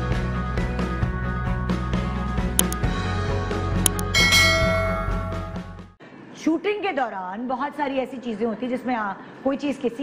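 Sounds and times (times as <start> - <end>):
bright bell chime: 4.0 - 5.6.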